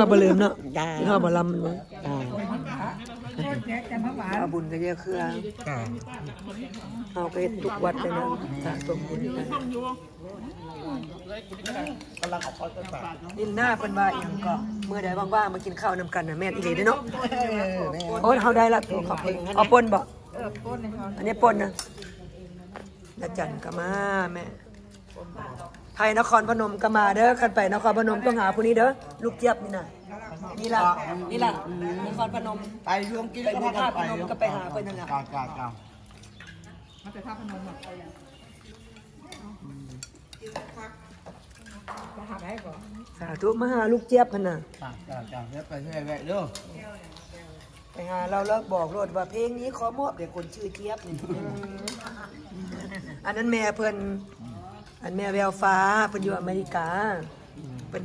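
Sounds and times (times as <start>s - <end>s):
people talking: 0.0s - 35.8s
cutlery clinking on plates: 50.3s - 53.2s.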